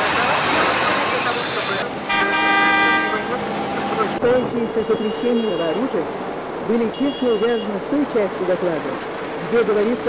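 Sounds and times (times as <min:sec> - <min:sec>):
street traffic noise: 0:00.0 - 0:10.0
vehicle horn blast: 0:02.1 - 0:03.4.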